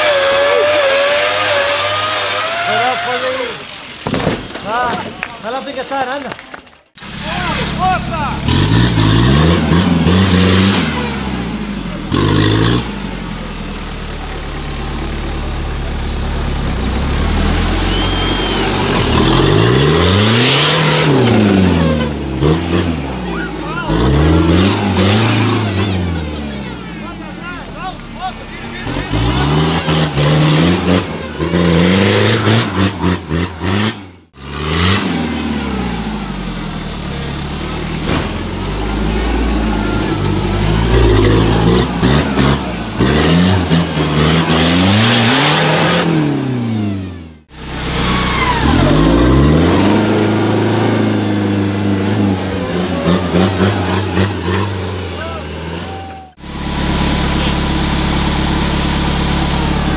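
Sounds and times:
buggy engine revving hard: 0.0s - 4.9s, 6.9s - 59.9s.

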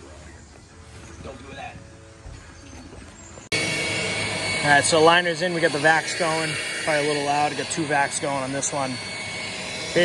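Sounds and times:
vacuums running with whine and hum: 3.3s - 10.0s.

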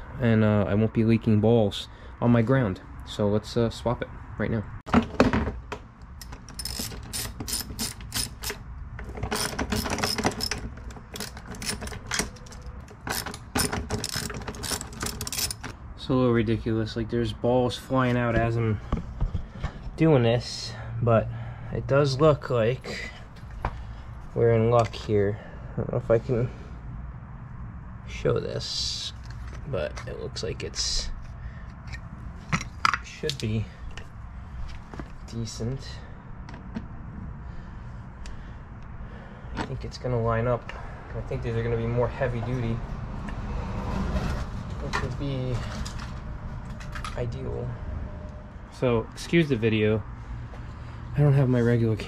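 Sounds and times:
hand ratchet clicking: 6.1s - 15.7s.

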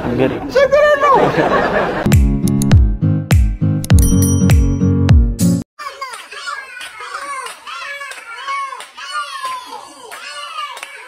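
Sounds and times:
high-pitched voices calling out: 5.8s - 11.0s
sharp claps: 6.1s - 11.0s.

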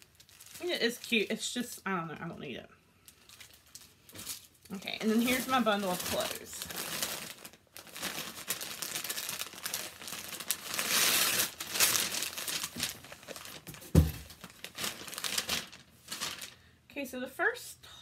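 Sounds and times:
tissue paper crinkling: 0.0s - 1.3s, 3.0s - 16.6s
dull thump: 13.7s - 14.3s.

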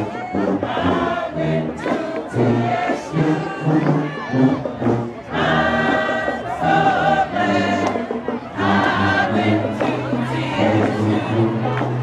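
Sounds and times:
crowd noise: 0.0s - 12.0s
marching band playing held chords: 0.0s - 12.0s.

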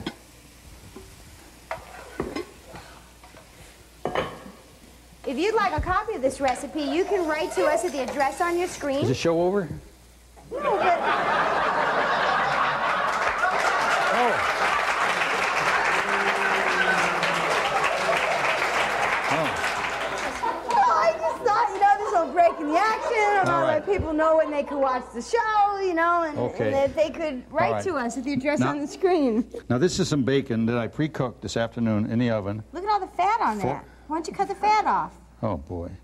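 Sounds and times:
faint steady hiss: 0.0s - 36.0s
spatula scraping frying pan: 1.7s - 4.2s, 6.3s - 9.0s
audience applauding: 11.5s - 21.4s.

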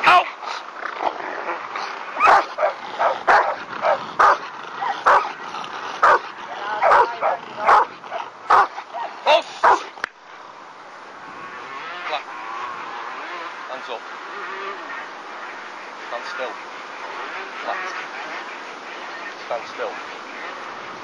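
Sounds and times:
dog barking: 2.2s - 5.4s, 6.0s - 9.9s.

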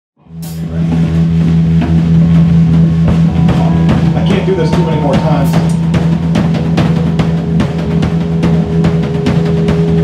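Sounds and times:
rock band playing: 0.3s - 10.0s.

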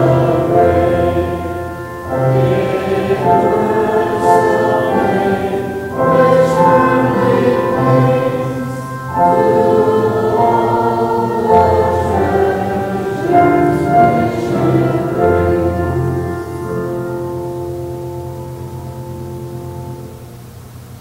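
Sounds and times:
group singing a hymn: 0.0s - 18.6s.

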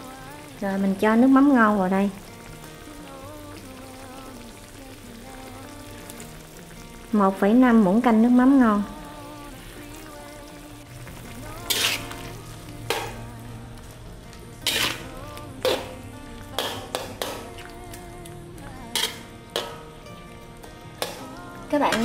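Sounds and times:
liquid simmering in a wok: 0.0s - 18.4s.

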